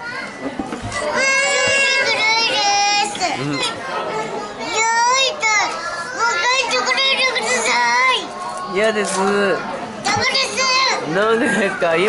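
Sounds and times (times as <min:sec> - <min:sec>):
girls talking and laughing: 0:00.0 - 0:12.0.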